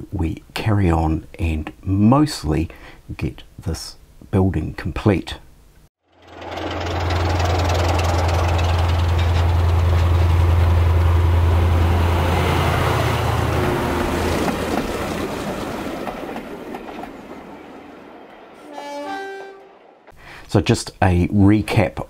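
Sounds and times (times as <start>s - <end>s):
diesel engine drone: 6.0s - 14.7s
train wheel and rail noise: 6.2s - 20.0s.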